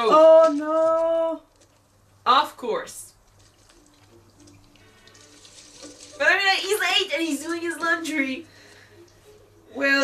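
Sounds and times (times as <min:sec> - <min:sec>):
faint background music: 0:00.0 - 0:10.0
water running into washing machine: 0:03.4 - 0:10.0.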